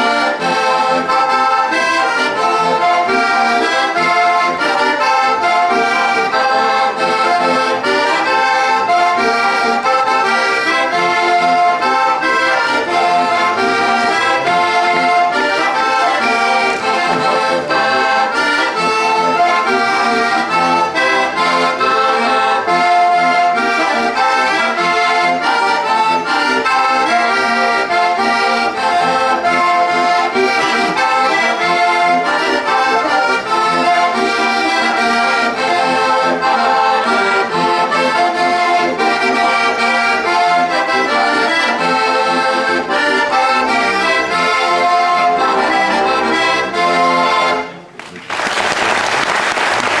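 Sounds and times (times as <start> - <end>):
button accordion folk tune: 0.0 - 50.0
audience applause: 48.0 - 50.0.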